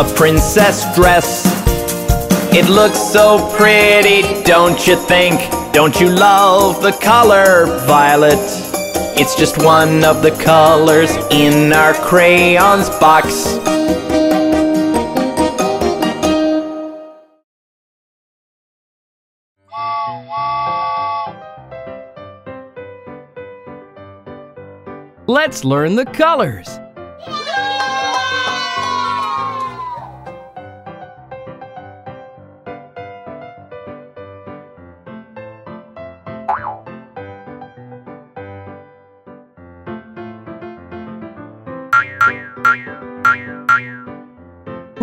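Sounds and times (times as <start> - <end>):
bouncy cartoon music: 0.0 - 17.1, 19.7 - 22.2, 25.2 - 31.2, 36.3 - 37.4, 41.9 - 45.0
cartoon steam train whistle: 19.7 - 21.4
bouncy music with short notes: 42.0 - 44.2.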